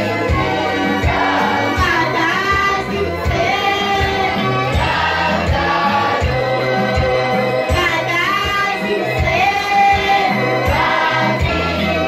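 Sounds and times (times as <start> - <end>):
choir singing a hymn: 0.0 - 12.0.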